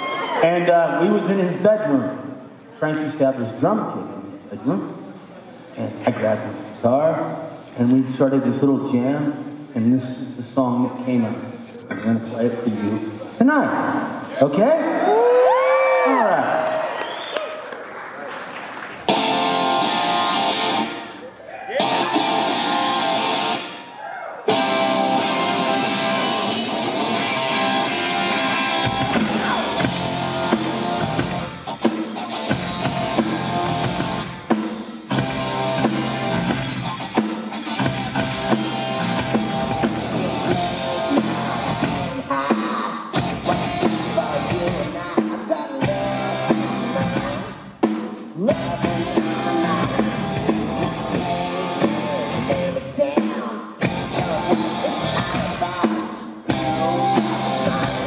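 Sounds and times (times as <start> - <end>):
bass: 19.0 - 21.0, 24.5 - 42.5, 43.1 - 45.2, 45.8 - 47.7, 48.4 - 53.2, 53.8 - 55.9, 56.5 - 58.0
rock band playing live: 19.0 - 21.2, 21.8 - 23.9, 24.5 - 58.0
drums: 19.0 - 58.0
guitar: 19.0 - 58.0.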